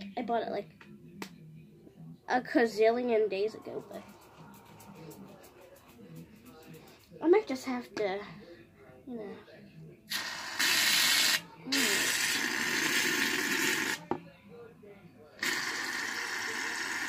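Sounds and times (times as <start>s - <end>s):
aerosol can spraying foam: 10.1s - 14.0s, 15.4s - 17.0s.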